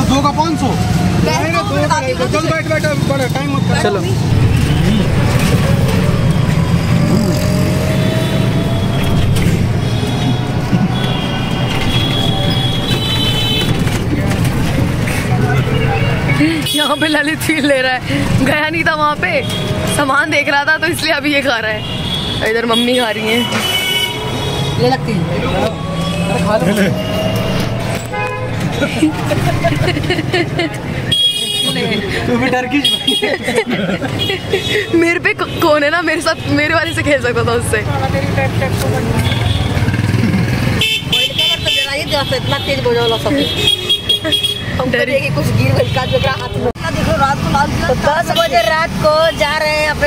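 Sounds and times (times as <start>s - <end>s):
city traffic: 0.0s - 50.0s
rickshaw rumbling: 0.0s - 50.0s
vehicle horn toot: 8.1s - 13.8s, 21.8s - 24.8s, 26.0s - 28.6s, 31.1s - 32.1s, 40.7s - 44.7s
people talking: 24.8s - 27.1s, 41.1s - 43.6s, 44.7s - 50.0s.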